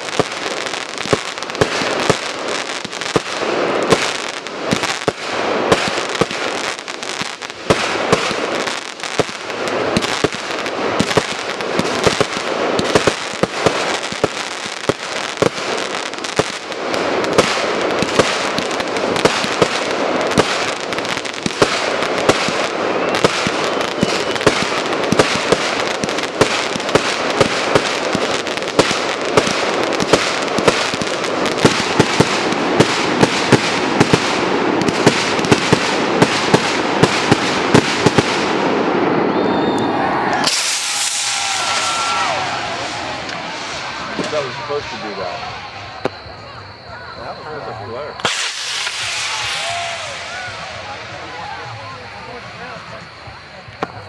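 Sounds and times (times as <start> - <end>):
fireworks crackling: 0.0 - 54.0
fireworks sharp reports: 0.0 - 54.0.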